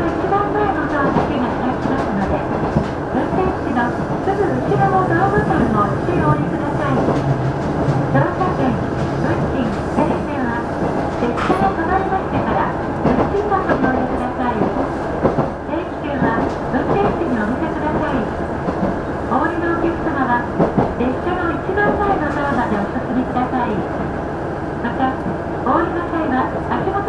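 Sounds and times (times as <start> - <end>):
train wheels on rails: 0.0 - 24.2
railcar engine noise: 0.0 - 27.0.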